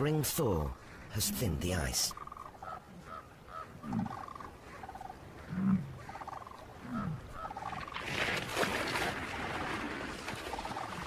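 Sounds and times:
bison grunting: 6.8s - 7.6s
icy water splashing: 7.7s - 11.0s.

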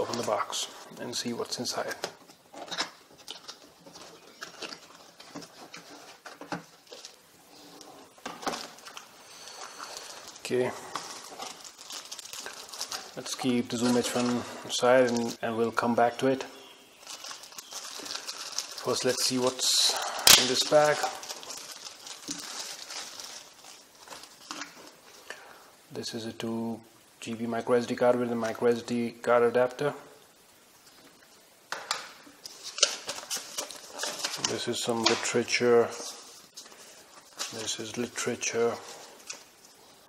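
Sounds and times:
rustling card and plastic: 0.0s - 25.3s, 30.8s - 40.0s
cardboard box being unpacked: 1.8s - 7.2s, 8.2s - 14.4s, 17.0s - 19.6s, 20.3s - 24.9s, 32.4s - 35.2s.

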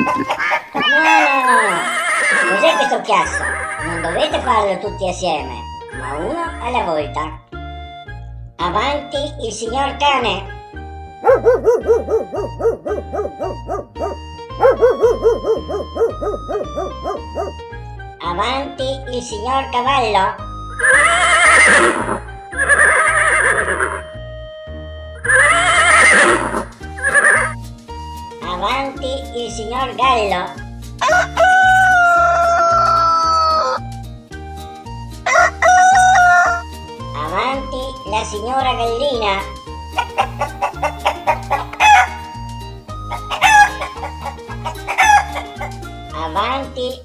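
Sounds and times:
horse whinnying: 0.0s - 4.3s, 20.7s - 24.0s, 25.2s - 27.6s
background music: 0.0s - 47.0s
rooster crowing: 31.0s - 33.8s, 35.3s - 36.7s, 40.6s - 42.2s, 43.2s - 45.6s.

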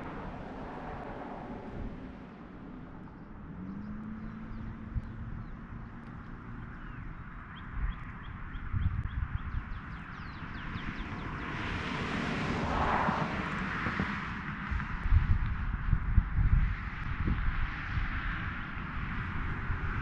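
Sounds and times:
rushing noise: 0.0s - 2.7s, 11.6s - 14.9s
small birds chirping: 3.0s - 11.4s.

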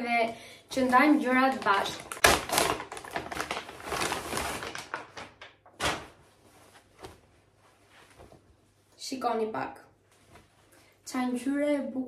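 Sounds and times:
paper bag rustling and crinkling: 0.7s - 7.3s.

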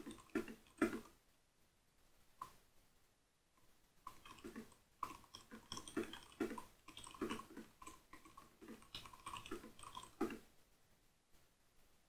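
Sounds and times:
computer keyboard typing: 4.2s - 10.4s.

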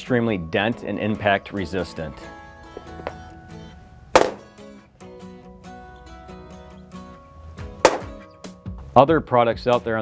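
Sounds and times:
background music: 0.0s - 10.0s
hammer striking vinyl plank: 4.2s - 4.5s, 7.9s - 8.2s.

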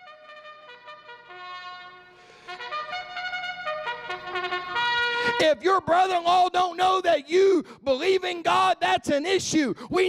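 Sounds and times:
trumpet playing held notes: 0.0s - 5.9s.

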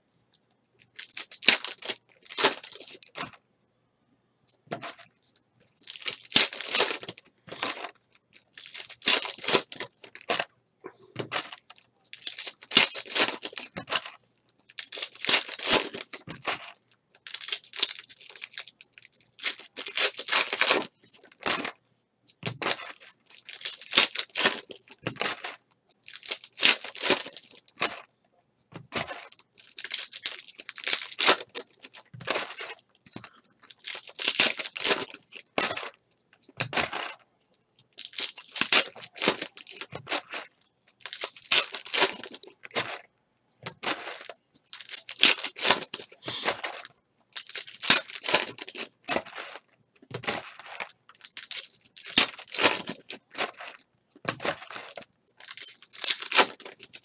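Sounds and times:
foil wrappers tearing and crinkling: 0.8s - 3.2s, 5.8s - 10.4s, 11.2s - 21.7s, 22.4s - 28.0s, 29.0s - 36.0s, 38.0s - 43.0s, 43.7s - 57.0s
cards sliding and shuffling: 46.1s - 46.8s.

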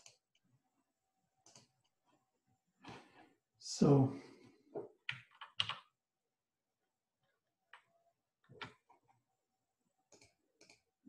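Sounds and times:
computer keyboard keystrokes: 5.1s - 5.8s.

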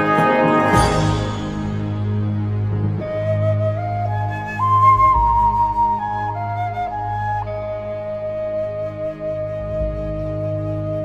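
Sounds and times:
flute melody: 0.0s - 11.0s
sustained low accompaniment: 0.0s - 11.0s.

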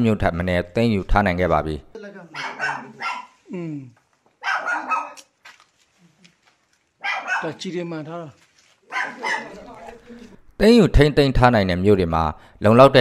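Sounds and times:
dog barking: 2.3s - 3.4s, 4.4s - 5.3s, 7.0s - 7.6s, 8.9s - 9.8s
people's voices: 9.0s - 10.4s.

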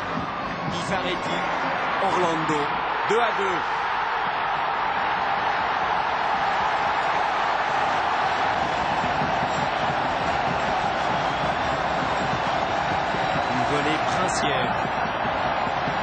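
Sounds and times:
stadium crowd cheering: 0.0s - 16.0s.

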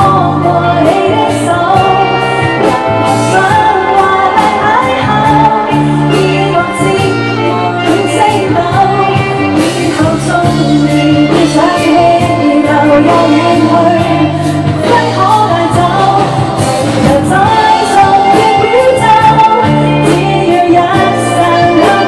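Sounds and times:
live band playing: 0.0s - 22.0s
woman singing pop ballad: 0.0s - 22.0s.

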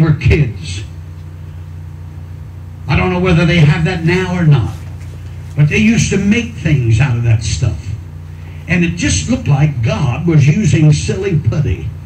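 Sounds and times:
steady low hum: 0.0s - 12.0s
man speaking: 2.9s - 5.0s, 5.6s - 8.0s, 8.7s - 12.0s.

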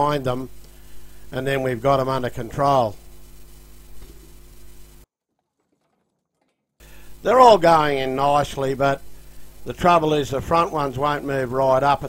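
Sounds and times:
faint steady hum: 0.0s - 5.1s, 6.8s - 12.0s.

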